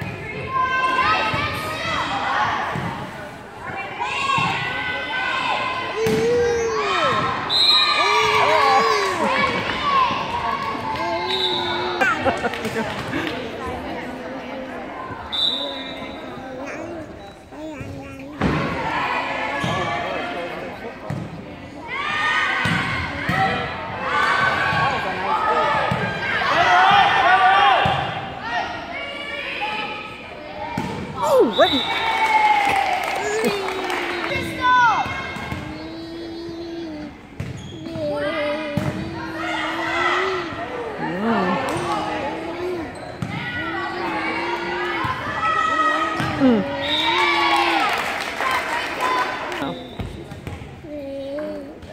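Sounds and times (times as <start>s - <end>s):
spectators chatting and laughing: 0.0s - 51.9s
voices in echoing hall: 0.0s - 51.9s.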